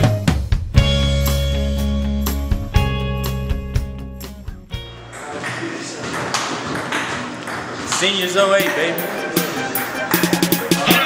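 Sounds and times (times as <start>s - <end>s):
background music: 0.0s - 5.6s, 8.0s - 11.0s.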